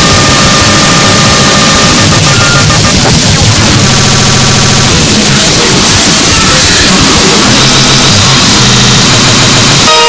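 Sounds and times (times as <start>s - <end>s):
distorted electronic dance music: 0.0s - 10.0s.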